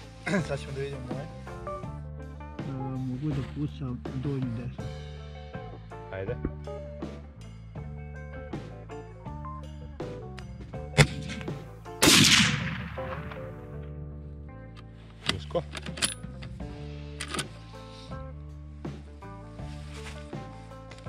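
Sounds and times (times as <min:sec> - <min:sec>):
rifle shot: 0:11.0 - 0:13.8
rifle bolt clicking: 0:15.3 - 0:16.6, 0:17.2 - 0:17.6.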